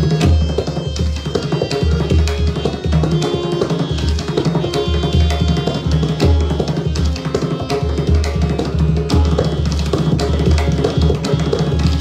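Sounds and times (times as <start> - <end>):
hand drums playing: 0.0 - 12.0
harmonium accompaniment: 0.0 - 12.0.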